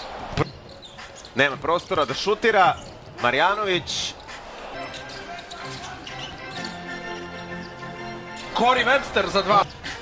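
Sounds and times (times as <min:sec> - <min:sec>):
murmur of arena crowd: 0:00.0 - 0:06.7.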